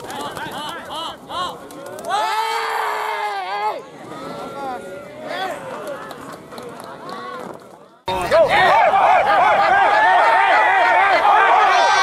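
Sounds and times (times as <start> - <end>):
crowd calling and shouting: 0.0 - 12.0.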